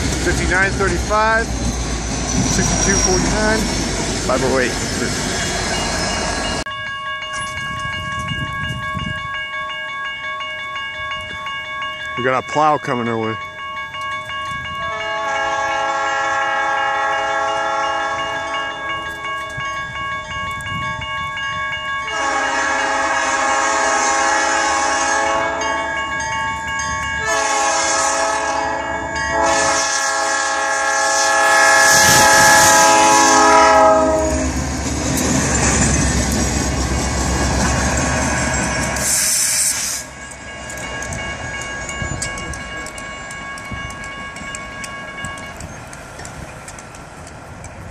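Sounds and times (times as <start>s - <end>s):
crossing bell ringing: 0.0s - 47.9s
train passing with loud rumble: 0.0s - 47.9s
locomotive air horn: 14.8s - 18.6s, 22.1s - 25.8s, 27.2s - 34.6s.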